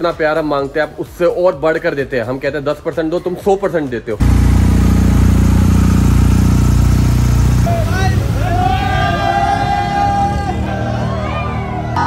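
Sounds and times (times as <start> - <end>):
motorcycle engine running: 4.2 - 8.5.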